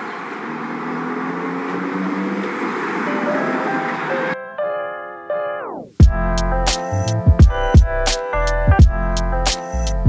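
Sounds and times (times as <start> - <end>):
low engine drone: 0.0 - 4.4, 6.0 - 10.0
tyres on wet road: 0.0 - 4.4.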